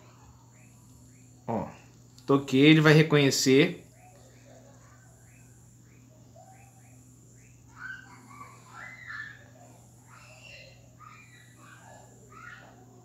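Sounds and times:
faint bird chirps: 0.0s - 13.0s
steady low hum: 0.0s - 13.0s.

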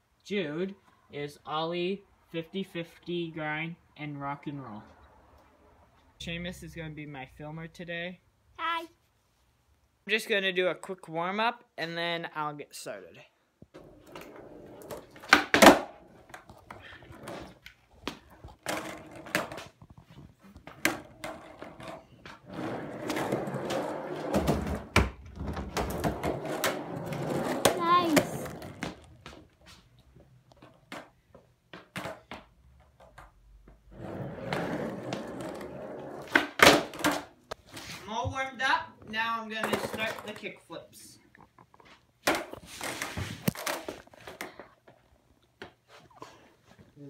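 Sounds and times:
skateboard wheels rolling on concrete: 13.7s - 40.8s, 41.8s - 46.8s
skateboard tail clacking: 13.8s - 19.6s, 23.0s - 29.1s.

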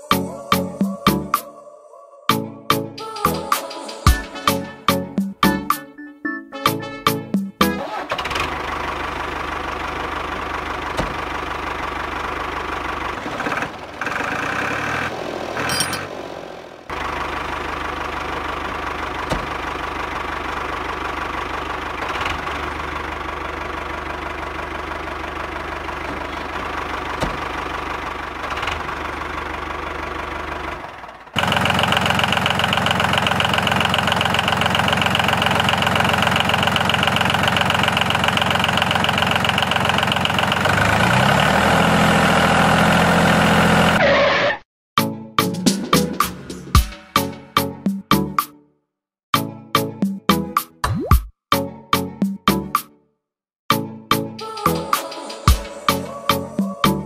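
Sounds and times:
tractor engine running: 7.1s - 44.0s, 45.7s - 47.6s.

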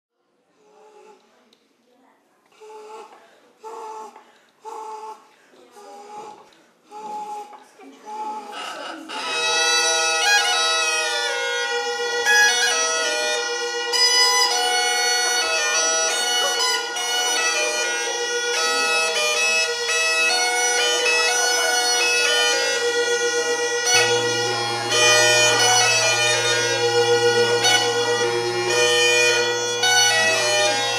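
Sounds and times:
short broken bagpipe sounds: 8.5s - 30.9s
bagpipe drone and melody: 9.1s - 30.9s.

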